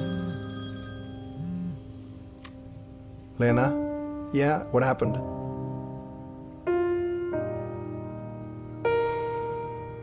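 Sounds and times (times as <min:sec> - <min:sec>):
mobile phone ringtone: 0:00.0 - 0:02.4
background music: 0:00.0 - 0:10.0.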